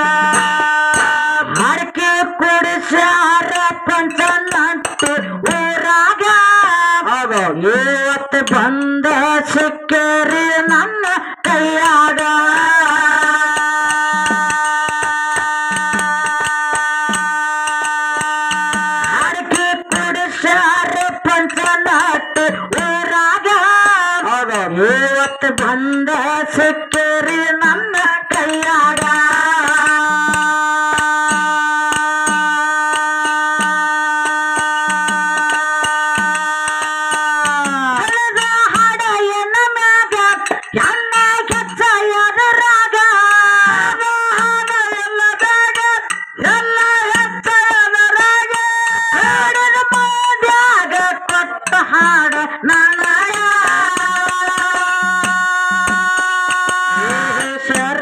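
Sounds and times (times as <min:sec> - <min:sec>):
hand drums beating: 0:00.0 - 0:58.0
person singing a long note: 0:53.7 - 0:58.0.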